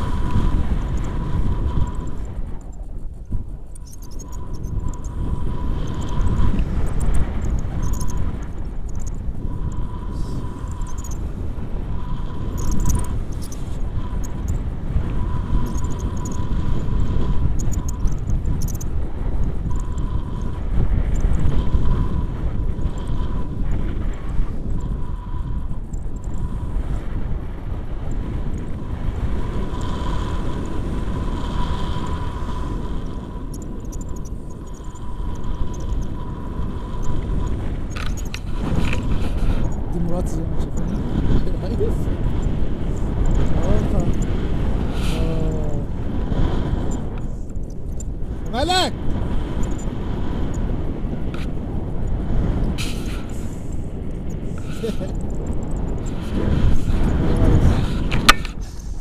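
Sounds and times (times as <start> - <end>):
wind buffeting microphone: 0.0 - 59.0.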